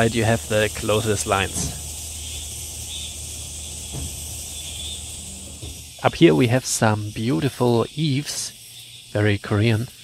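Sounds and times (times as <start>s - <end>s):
high-pitched insect chorus: 0.0s - 10.0s.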